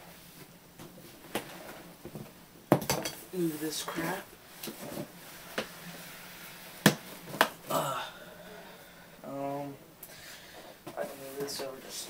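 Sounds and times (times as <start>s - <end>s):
soft scuffle: 10.9s - 12.0s.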